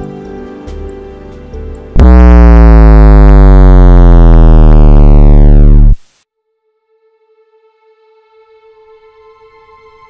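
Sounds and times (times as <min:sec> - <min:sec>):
distorted low electronic buzzing: 0:02.0 - 0:06.2.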